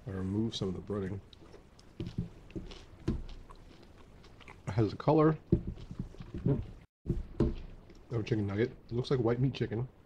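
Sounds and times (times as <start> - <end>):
person chewing: 1.2 - 8.1.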